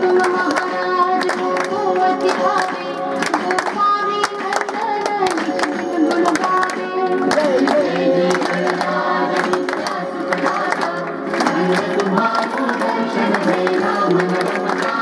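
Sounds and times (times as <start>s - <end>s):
crowd clapping along: 0.0s - 15.0s
crowd singing: 0.0s - 15.0s.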